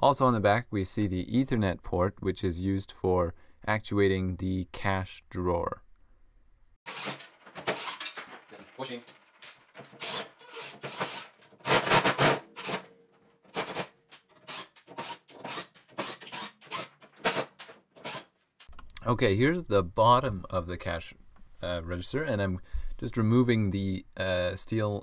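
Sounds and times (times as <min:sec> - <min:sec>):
screwdriver scraping metal screws: 0:06.9 - 0:08.2, 0:09.8 - 0:12.9, 0:13.5 - 0:18.3.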